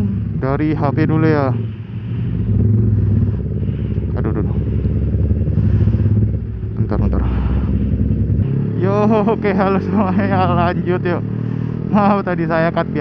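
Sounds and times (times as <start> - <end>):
motorcycle engine running: 0.0 - 13.0
road and wind noise: 0.0 - 13.0.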